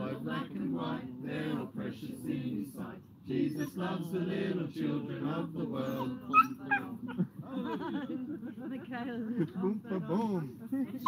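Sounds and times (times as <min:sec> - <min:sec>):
dog yipping and whining: 0:05.9 - 0:06.9
people laughing: 0:06.8 - 0:10.4.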